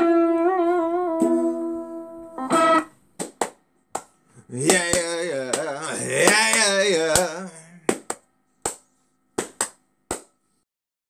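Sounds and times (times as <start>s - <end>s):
sharp hand claps: 3.2s - 10.4s.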